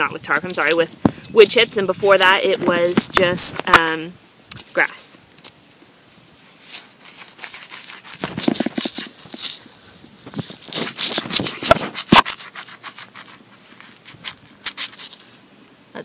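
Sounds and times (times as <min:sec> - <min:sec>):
mulch brushed aside by hand: 0:05.7 - 0:15.4
metal tool scraping into soil: 0:06.2 - 0:15.4.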